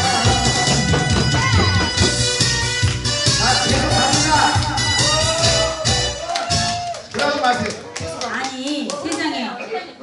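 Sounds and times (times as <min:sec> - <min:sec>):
group clapping: 0:00.0 - 0:09.8.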